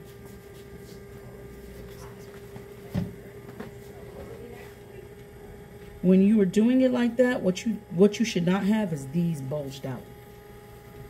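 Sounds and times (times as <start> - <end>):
potter's wheel humming: 0.0 - 11.0.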